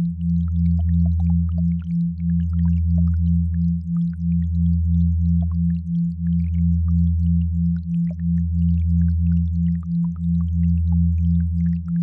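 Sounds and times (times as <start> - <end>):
deep steady sine hum: 0.0 - 12.0.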